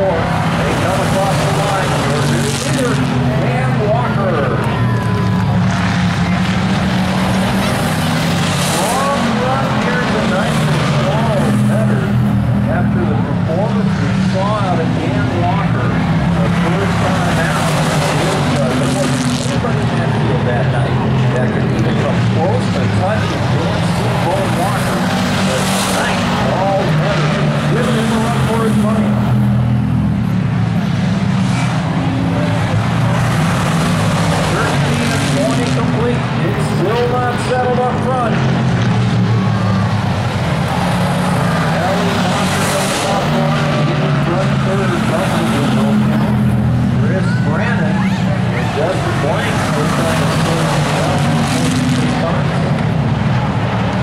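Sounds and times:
race car engines: 0:00.0 - 0:54.0.

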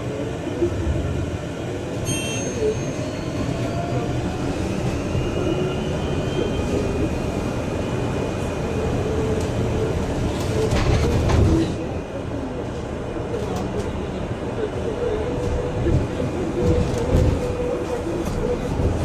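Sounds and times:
bus road rumble: 0:06.7 - 0:19.0.

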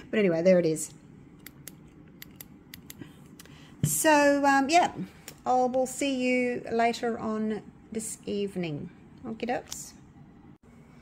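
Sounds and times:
woman's voice: 0:00.0 - 0:01.0, 0:03.8 - 0:10.0.

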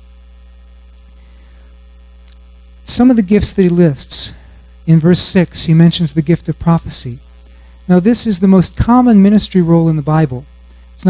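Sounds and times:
electrical mains hum: 0:00.0 - 0:11.0
man speaking: 0:02.8 - 0:07.2, 0:07.9 - 0:11.0.

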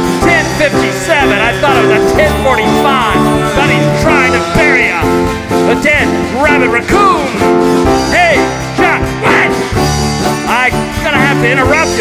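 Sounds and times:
country band music: 0:00.0 - 0:12.0.

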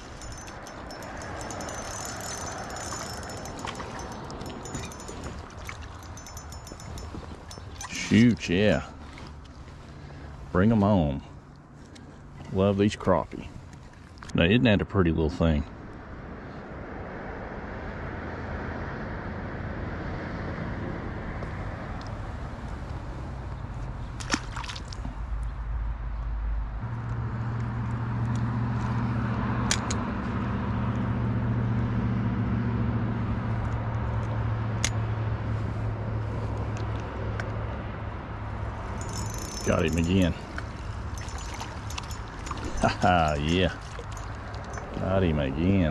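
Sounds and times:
low motor hum: 0:00.0 - 0:07.8
steady outdoor noise: 0:00.0 - 0:45.9.

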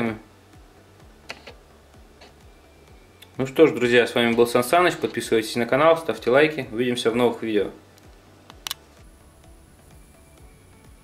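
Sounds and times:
low steady background noise: 0:00.0 - 0:11.0
person speaking: 0:03.3 - 0:07.9.

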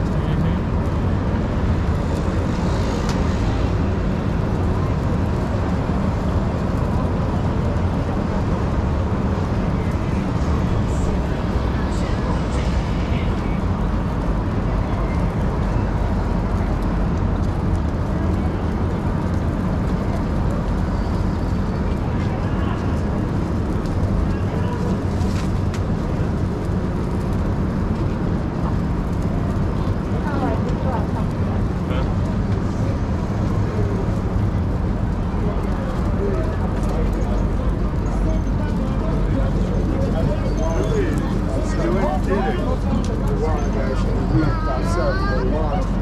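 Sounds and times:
electric scooter rumble: 0:00.0 - 0:46.0
passersby talking: 0:00.0 - 0:46.0
street traffic: 0:00.0 - 0:46.0.

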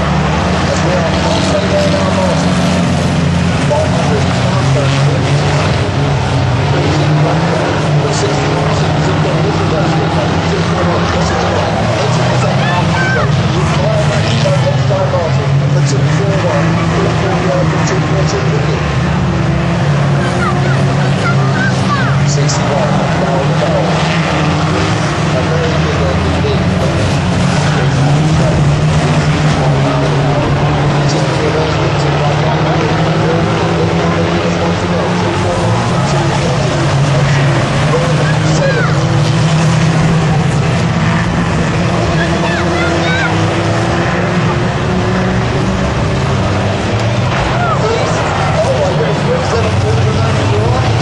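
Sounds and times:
racing van engines revving: 0:00.0 - 0:51.0.

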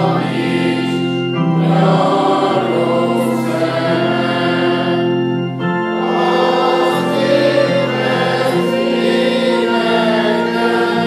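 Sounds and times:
congregation singing a hymn: 0:00.0 - 0:11.0
electronic keyboard organ sound: 0:00.0 - 0:11.0.

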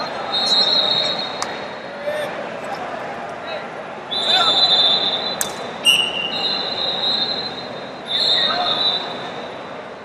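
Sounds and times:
crowd noise: 0:00.0 - 0:10.0
referee whistle blowing: 0:00.2 - 0:01.5, 0:04.1 - 0:09.3.

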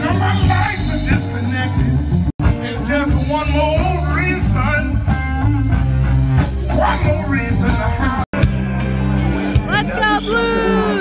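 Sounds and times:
drum kit: 0:00.0 - 0:11.0
electric guitar: 0:00.0 - 0:11.0.

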